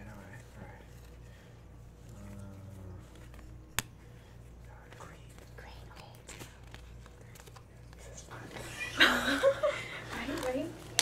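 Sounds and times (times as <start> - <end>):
low steady hum: 0.0 - 11.0
faint whispering: 2.0 - 3.4, 4.6 - 8.6.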